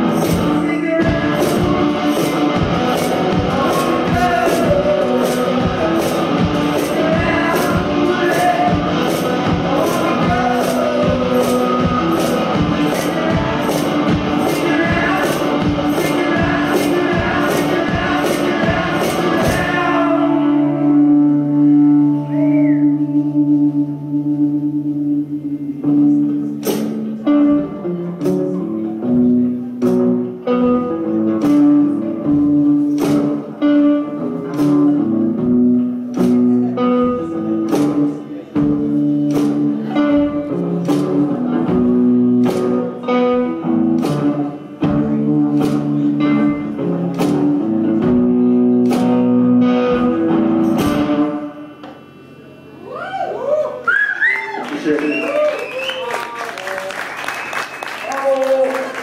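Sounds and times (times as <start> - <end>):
percussion strikes: 0.0 - 20.1, 26.1 - 28.5, 34.4 - 52.5
guitar playing: 0.0 - 53.0.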